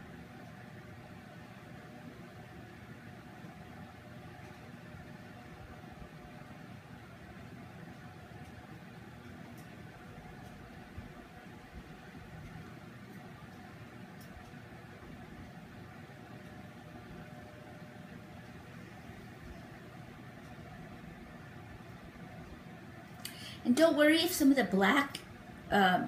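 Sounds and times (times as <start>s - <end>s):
low background hum: 0.0s - 26.0s.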